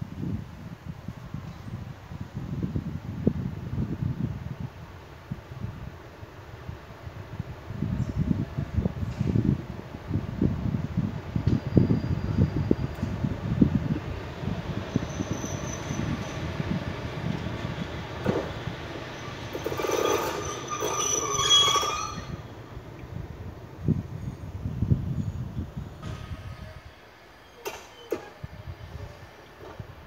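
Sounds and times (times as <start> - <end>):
locomotive wheels rumbling on rails: 2.8 - 30.0
brake squeal: 11.5 - 13.0, 14.9 - 16.5, 18.3 - 22.5, 26.0 - 29.5.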